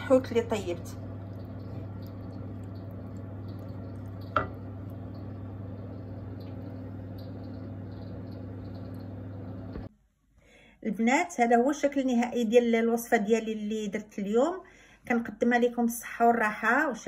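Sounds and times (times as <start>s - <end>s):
steady low hum: 0.0s - 9.9s
wooden spoon stirring sauce in pan: 0.9s - 9.2s
spoon knocking against pan: 2.8s - 5.3s.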